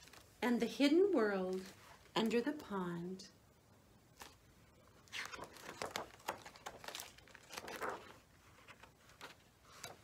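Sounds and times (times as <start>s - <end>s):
book pages flipping: 4.1s - 10.0s.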